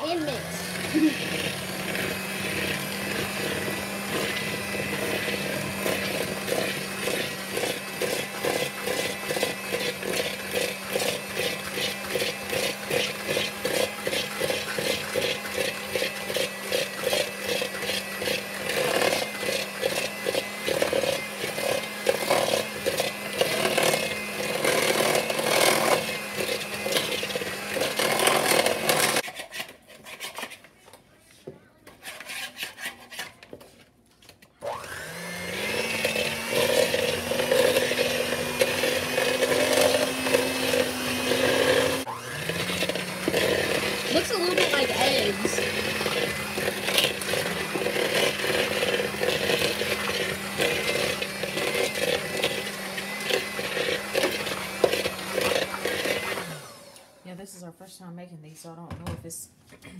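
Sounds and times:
electric hand mixer running: 0:00.0 - 0:29.2, 0:34.6 - 0:57.4.

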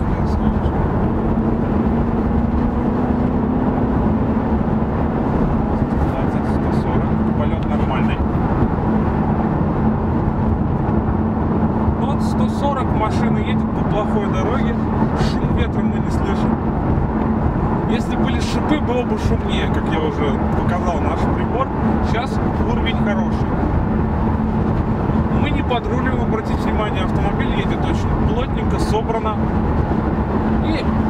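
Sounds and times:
road and tyre noise in car cabin: 0:00.0 - 0:31.0.

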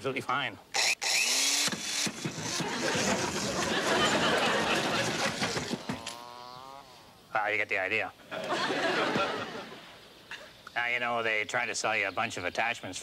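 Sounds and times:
electric drill driving screws: 0:00.8 - 0:04.1, 0:04.9 - 0:06.3.

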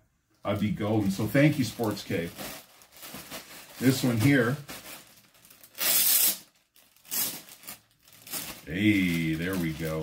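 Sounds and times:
packaging tearing: 0:00.8 - 0:10.0.

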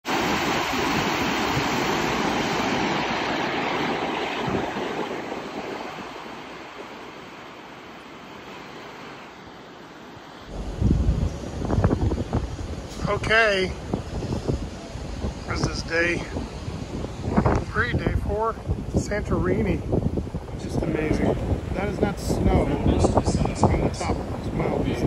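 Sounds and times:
wind buffeting microphone: 0:00.0 - 0:08.9, 0:10.5 - 0:25.0
rushing churning water: 0:00.0 - 0:25.0.

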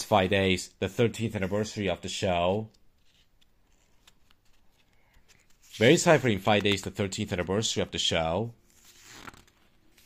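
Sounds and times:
magazine pages handled: 0:02.8 - 0:07.4, 0:08.7 - 0:10.0.

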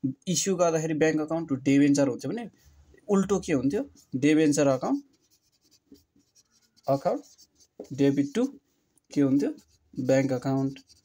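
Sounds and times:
man speaking: 0:00.0 - 0:05.1, 0:06.8 - 0:11.0
marker writing on whiteboard: 0:03.2 - 0:11.0.

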